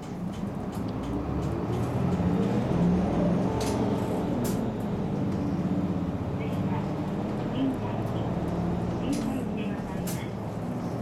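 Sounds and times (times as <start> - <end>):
bus diesel engine accelerating: 0.0 - 11.0.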